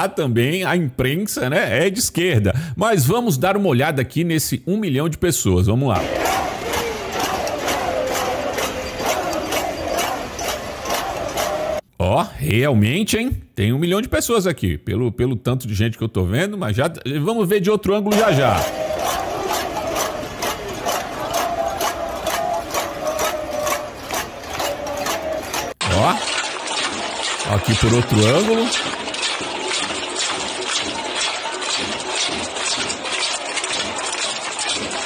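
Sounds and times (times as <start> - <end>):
rhythmic claps or drums: 5.9 - 11.8, 18.1 - 35.0
crowd chanting in unison: 6.0 - 11.8, 18.1 - 25.8.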